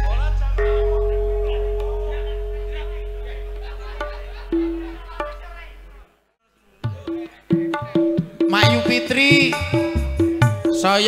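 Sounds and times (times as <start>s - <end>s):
faint crowd chatter: 0.0s - 8.5s
gong note ringing: 0.6s - 5.6s
low hum: 0.6s - 5.8s.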